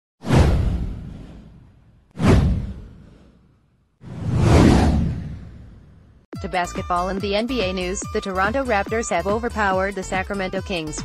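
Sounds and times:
whoosh sound effect: 0.2 - 6.1
deep low boom: 0.3 - 3.3.

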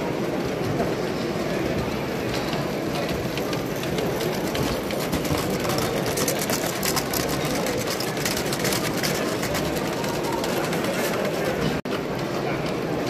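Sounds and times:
hall background noise: 0.0 - 13.0
rapid clicking from train: 0.0 - 13.0.

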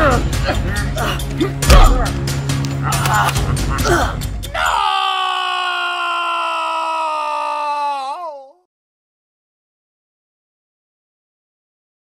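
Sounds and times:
long held cry: 2.8 - 8.7.

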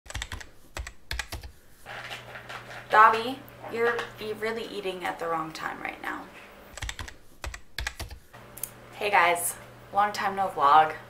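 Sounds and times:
sharp clicks: 6.7 - 8.8.

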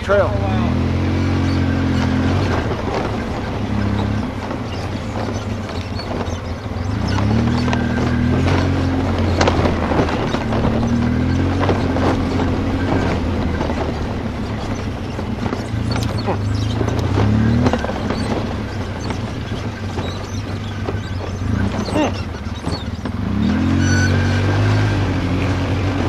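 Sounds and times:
atv engine revving: 0.0 - 26.0
knocks and rattles: 1.0 - 26.0.

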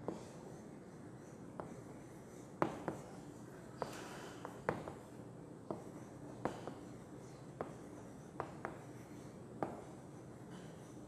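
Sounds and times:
chalk tapping on chalkboard: 2.6 - 3.2, 5.7 - 6.9, 7.6 - 9.9.

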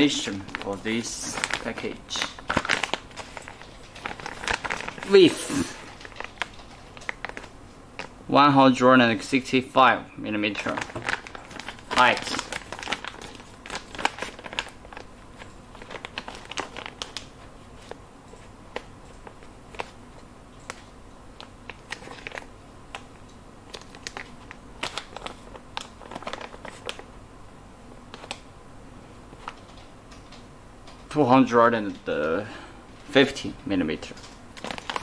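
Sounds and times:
fingers handling plastic bag: 0.0 - 8.2, 10.4 - 27.1, 34.0 - 35.0
plastic sachet crinkling: 0.0 - 8.2, 10.4 - 27.1, 34.0 - 35.0
low room hum: 0.0 - 35.0.

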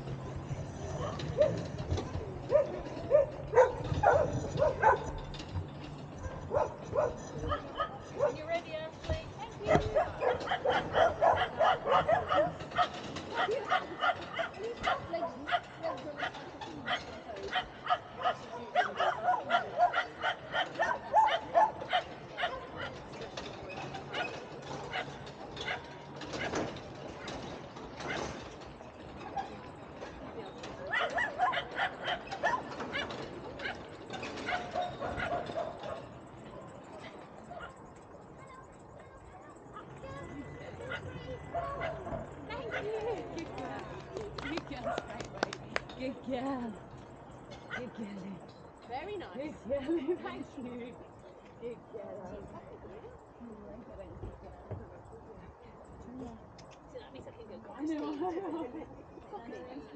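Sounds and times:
dog barking: 2.5 - 5.1, 6.2 - 8.4, 9.9 - 16.3, 34.5 - 36.1, 41.6 - 42.1.

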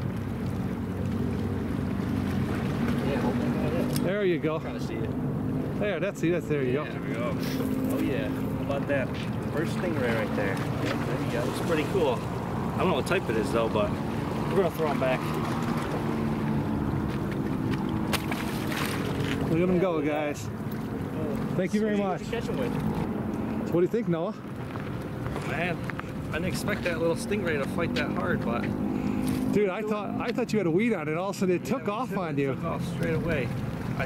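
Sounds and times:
motor droning low: 0.0 - 19.6
water washing against rocks: 8.8 - 20.3.

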